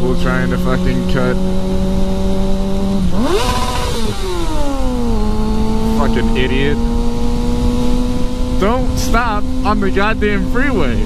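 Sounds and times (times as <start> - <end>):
motorcycle engine revving: 0.0 - 11.0
wind on microphone: 1.2 - 11.0.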